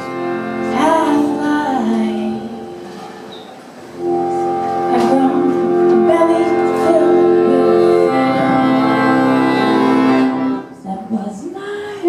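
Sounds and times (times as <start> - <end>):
accordion and singing: 0.0 - 3.1, 4.0 - 12.0
room noise: 0.0 - 12.0.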